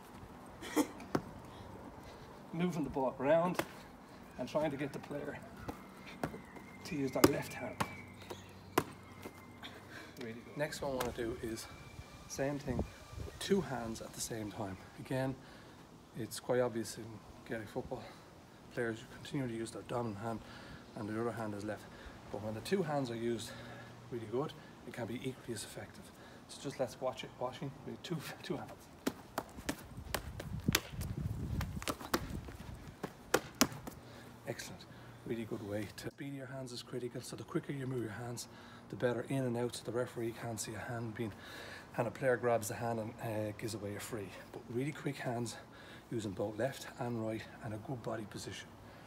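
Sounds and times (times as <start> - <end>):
hand slapping a football: 3.5 - 3.8, 7.1 - 9.0, 29.0 - 32.4, 33.0 - 34.0.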